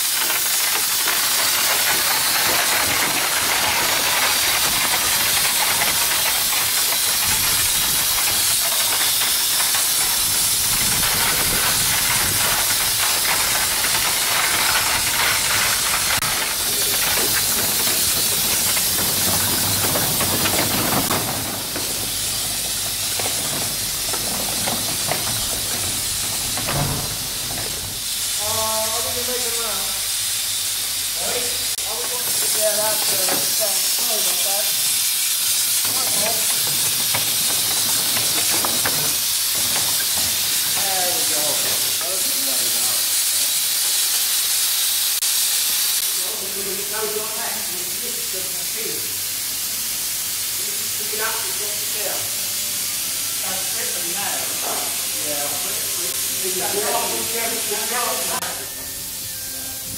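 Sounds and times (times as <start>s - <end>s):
steam hissing: 0.0s - 59.9s
voices: 10.7s - 30.1s, 31.2s - 34.9s, 35.8s - 43.1s, 53.4s - 58.9s.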